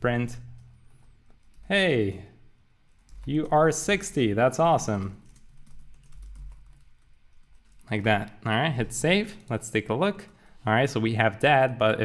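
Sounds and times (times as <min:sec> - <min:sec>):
typing on computer keyboard: 0:03.0 - 0:03.6, 0:04.9 - 0:08.4.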